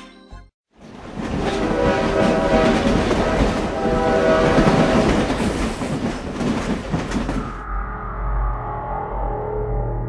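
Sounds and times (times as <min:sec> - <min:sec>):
train passing at speed: 0:00.8 - 0:07.6
train horn blowing: 0:01.3 - 0:05.3.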